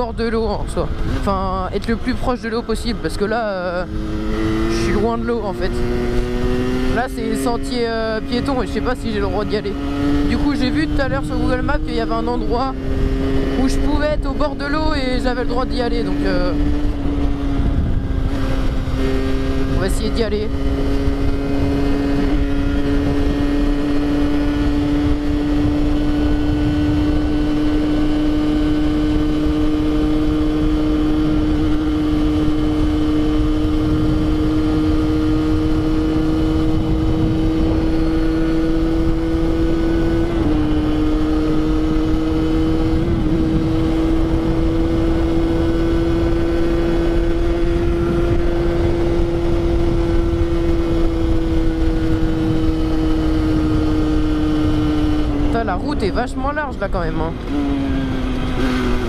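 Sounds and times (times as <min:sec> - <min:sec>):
motorcycle engine buzzing: 0:00.0 - 0:59.0
wind rush on microphone: 0:00.0 - 0:59.0.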